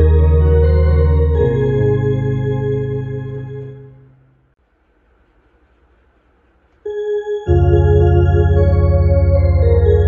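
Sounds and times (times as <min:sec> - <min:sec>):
electronic organ holding a note: 0:00.0 - 0:04.2, 0:06.9 - 0:10.0.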